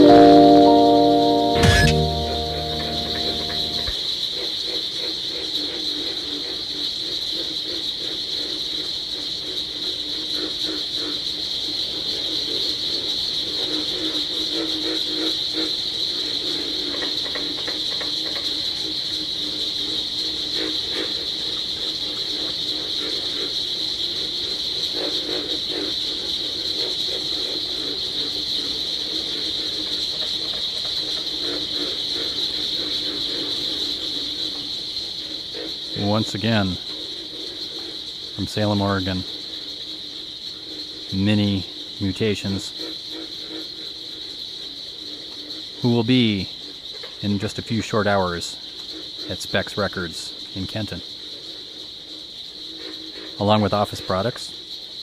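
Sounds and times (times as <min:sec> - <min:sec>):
steady high hiss: 0:00.0 - 0:03.9.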